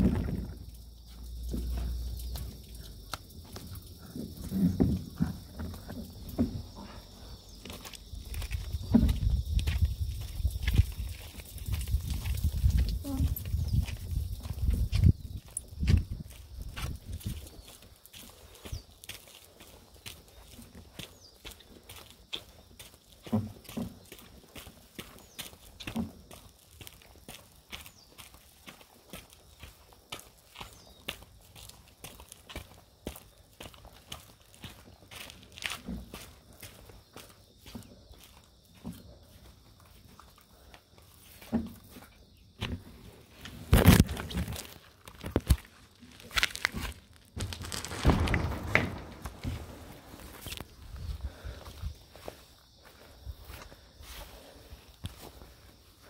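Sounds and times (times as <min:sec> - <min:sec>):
thuds of board being moved: 0:08.8 - 0:09.4, 0:47.4 - 0:50.6
footsteps: 0:34.6 - 0:55.8.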